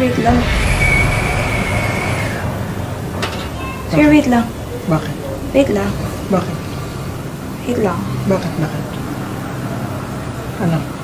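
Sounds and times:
faint high whine: 0:00.3 - 0:06.9
steady rumbling: 0:00.3 - 0:07.9.

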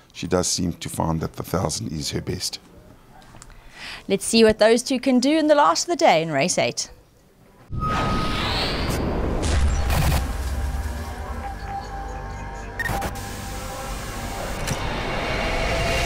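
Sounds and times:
sharp booming hits: 0:07.7 - 0:11.3
cinematic music bed: 0:07.7 - 0:16.0.

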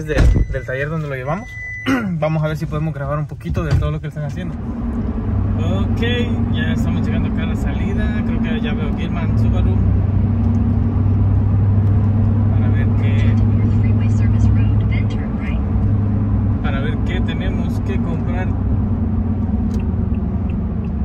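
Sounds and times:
car cabin road and engine drone: 0:00.0 - 0:21.0.

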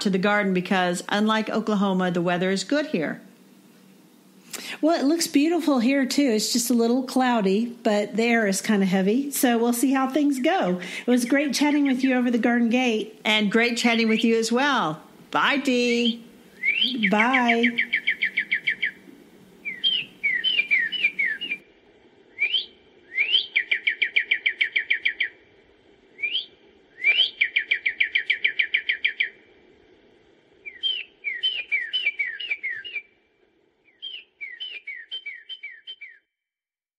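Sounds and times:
faint steady hum: 0:00.0 - 0:34.9
songbird singing: 0:05.3 - 0:21.7, 0:22.3 - 0:25.5, 0:26.1 - 0:29.5, 0:30.6 - 0:36.3.

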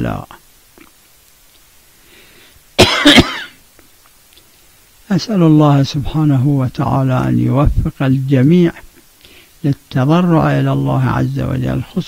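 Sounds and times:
man coughing: 0:02.8 - 0:03.6.

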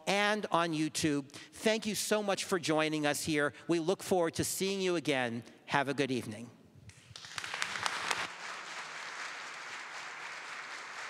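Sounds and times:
audience applauding: 0:07.0 - 0:11.0.

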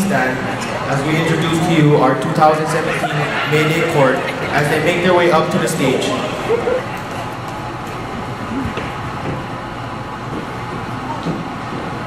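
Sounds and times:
low background voices: 0:00.0 - 0:12.0
crowd shuffling: 0:00.3 - 0:12.0.

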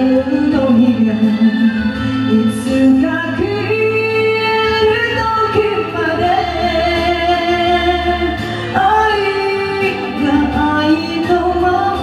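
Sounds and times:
karaoke backing music: 0:00.0 - 0:12.0
woman singing a slow ballad: 0:00.0 - 0:12.0.

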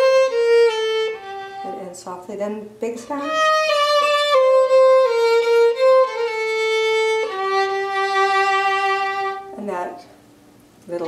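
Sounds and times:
solo violin playing: 0:00.0 - 0:02.0, 0:03.1 - 0:09.6.

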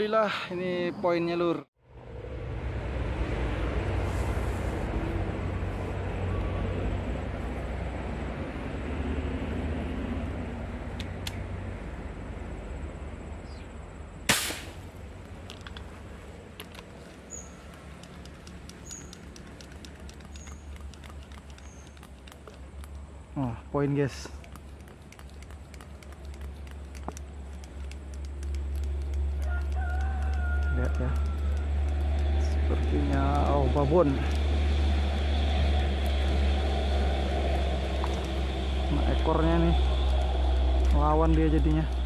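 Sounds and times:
low outdoor rush: 0:00.0 - 0:42.0
air rifle shot: 0:14.3 - 0:14.9
faint clicks: 0:16.5 - 0:23.0, 0:24.3 - 0:32.4.

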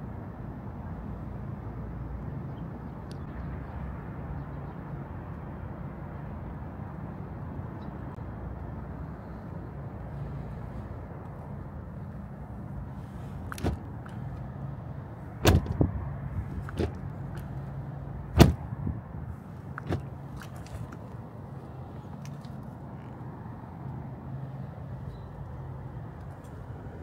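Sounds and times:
car door latch clicks: 0:13.4 - 0:14.2, 0:15.4 - 0:17.5, 0:18.3 - 0:18.7, 0:19.7 - 0:20.6.

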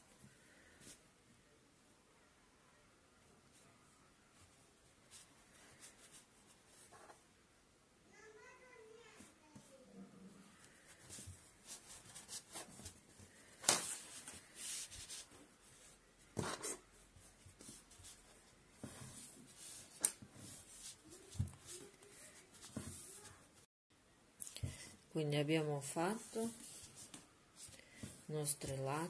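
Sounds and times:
yarn rubbing and rustling: 0:10.6 - 0:23.7.

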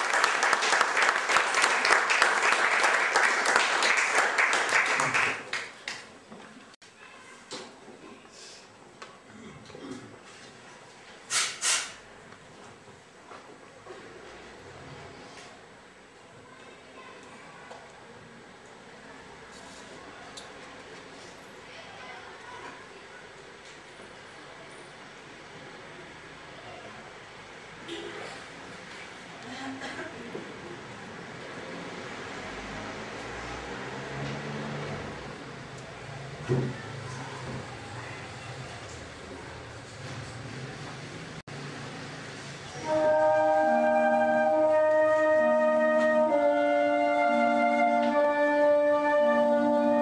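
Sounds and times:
short loud hissing: 0:11.3 - 0:12.1
low murmuring voices: 0:35.4 - 0:41.4.

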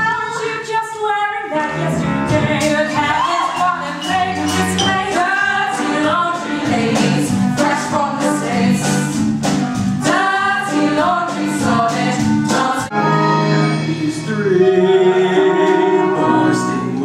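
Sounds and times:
chorus singing together: 0:01.7 - 0:09.2, 0:10.0 - 0:17.0.

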